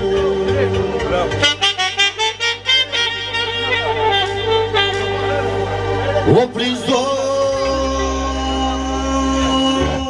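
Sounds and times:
steady low band backing: 0.0s - 10.0s
saxophone fast run: 1.4s - 6.0s
person singing: 6.3s - 10.0s.

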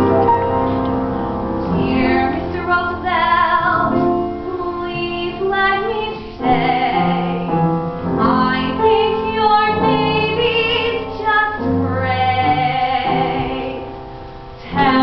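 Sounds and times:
piano accompaniment: 0.0s - 15.0s
woman singing with vibrato: 1.7s - 7.6s, 8.2s - 14.0s, 14.7s - 15.0s.

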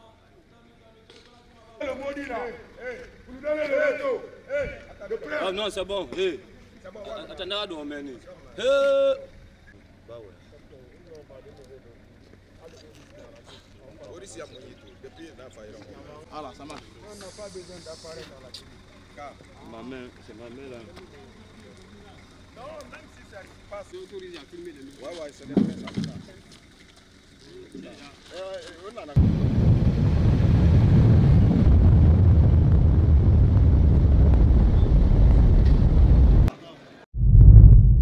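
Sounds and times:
voices talking: 0.1s - 29.2s
hiss: 17.0s - 18.4s
loud low rumbling: 29.2s - 36.5s, 37.1s - 38.0s.

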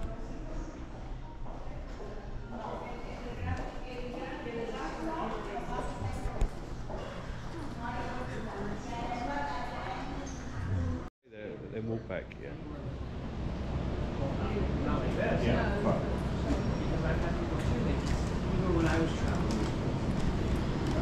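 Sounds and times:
indistinct talking: 0.0s - 11.1s.

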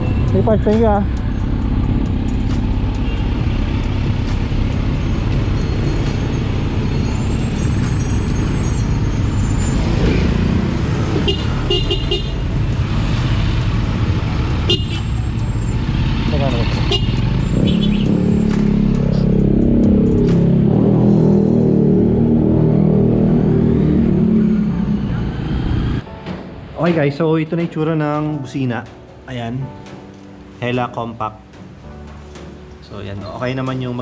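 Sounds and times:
motorcycle engine running: 9.1s - 20.7s
horn toots: 11.1s - 12.5s, 14.6s - 15.2s, 16.8s - 18.3s.

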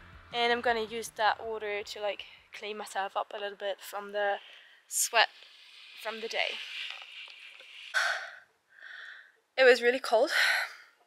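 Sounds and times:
woman gasping: 8.0s - 9.4s.

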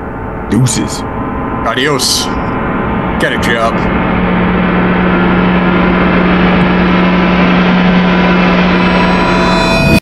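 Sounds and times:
loud low drone: 0.0s - 10.0s.

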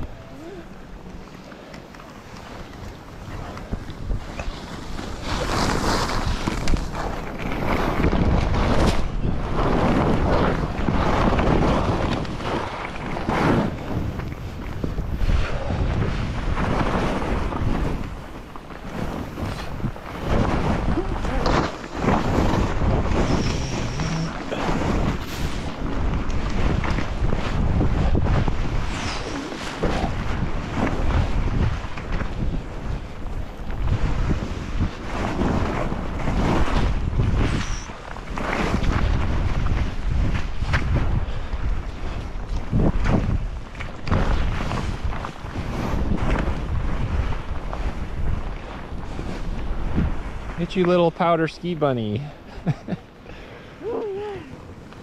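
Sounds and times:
wind rushing over microphone: 0.0s - 1.4s, 2.1s - 55.0s
skis hissing in snow: 23.1s - 24.3s.

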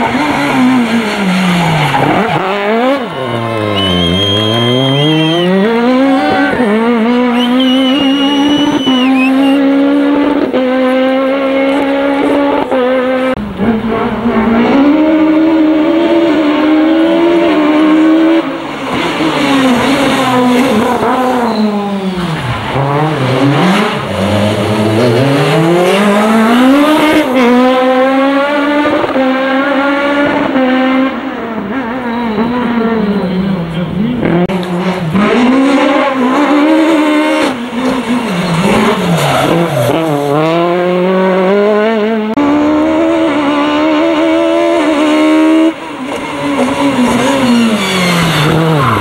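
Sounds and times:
rally car engine revving: 0.0s - 49.0s.

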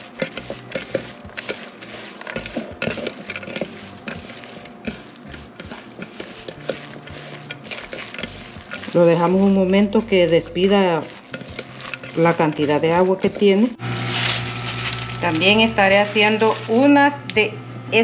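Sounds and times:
wet rustling and squishing: 0.0s - 9.2s.

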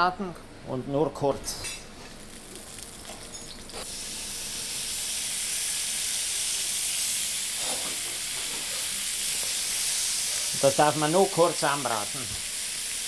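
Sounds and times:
meat sizzling in hot oil: 2.0s - 13.0s.

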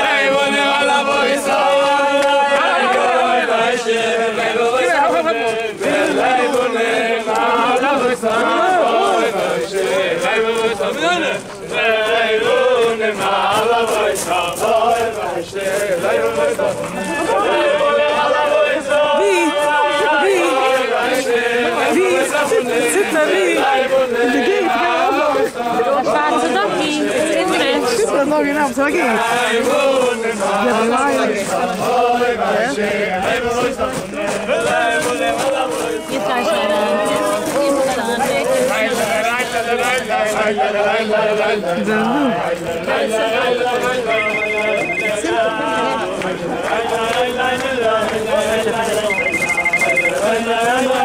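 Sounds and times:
men singing together: 0.0s - 51.0s.

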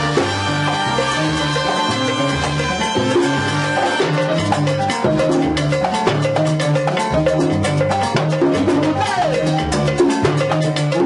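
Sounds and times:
bass line: 0.0s - 11.0s
conga drum struck by hand: 0.0s - 11.0s
keyboard notes: 0.0s - 11.0s.

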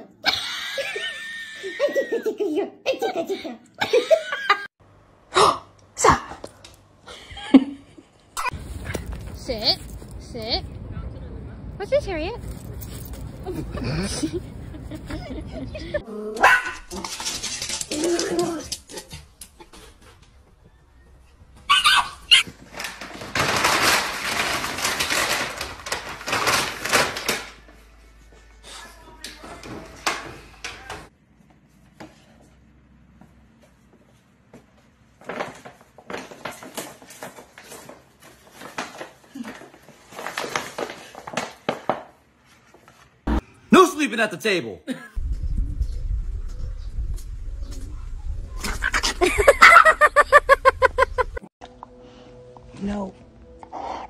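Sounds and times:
plastic sheet crackling: 22.5s - 27.7s
low microphone rumble: 45.2s - 49.3s.

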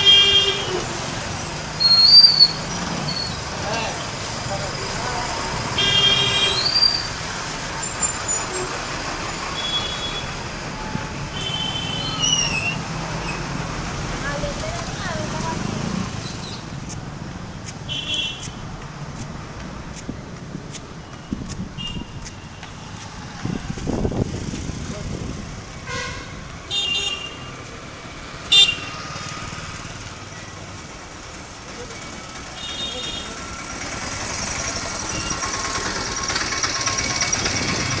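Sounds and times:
vehicle horn toots: 0.0s - 0.7s, 5.8s - 7.0s, 25.8s - 27.5s, 28.5s - 29.0s
motorcycle engines: 0.0s - 38.0s
traffic engines: 0.0s - 38.0s.

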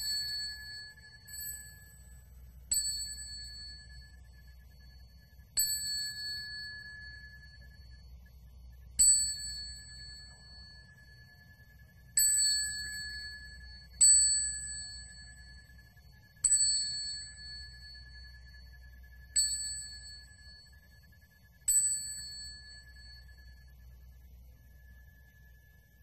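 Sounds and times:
faint low hum: 0.0s - 26.0s
small hand bell ringing: 0.0s - 26.0s.

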